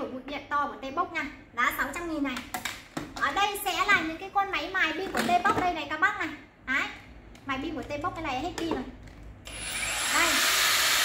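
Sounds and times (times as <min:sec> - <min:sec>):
angle grinder whirring: 0:09.4 - 0:11.0.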